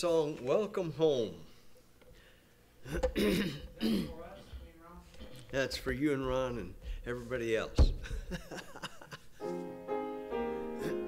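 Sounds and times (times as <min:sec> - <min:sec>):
man clearing his throat: 0:02.8 - 0:04.3.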